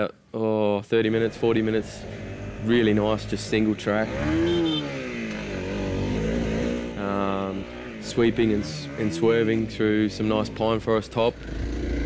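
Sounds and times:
dirt bike engine revving: 1.1 - 12.0.

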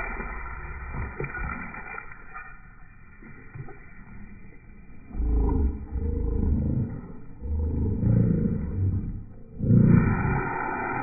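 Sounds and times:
dog growling: 5.1 - 10.5.

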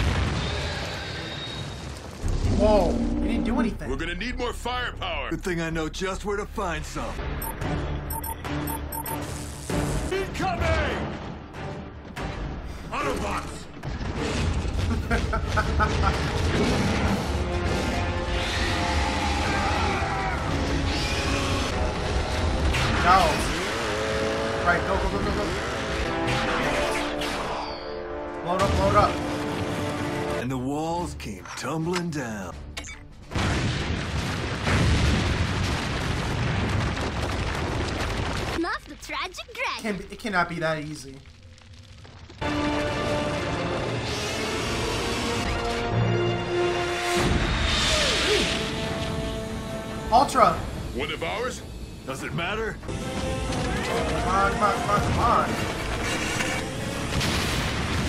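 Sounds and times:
dramatic orchestral score: 9.6 - 33.4, 42.4 - 58.0
cartoon soundtrack music: 24.9 - 30.4, 52.8 - 57.4.

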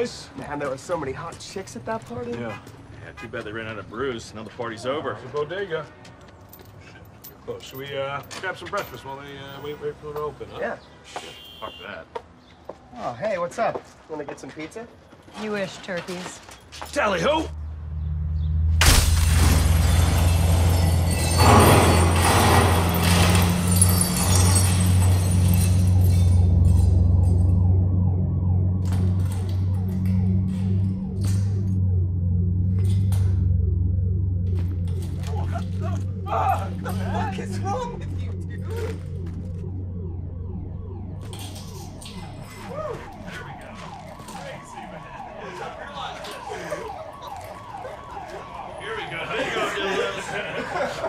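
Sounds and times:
glass shards tinkling: 19.4 - 27.0
car alarm whooping: 19.6 - 51.0
steady low hum: 25.6 - 43.2.

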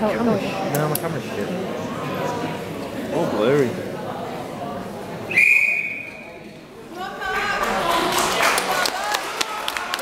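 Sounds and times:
whistle blown: 5.3 - 6.4.

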